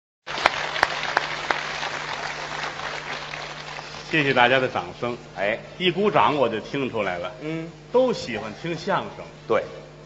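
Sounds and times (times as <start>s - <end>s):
audience applauding: 0.3s - 4.5s
low steady hum: 0.3s - 10.0s.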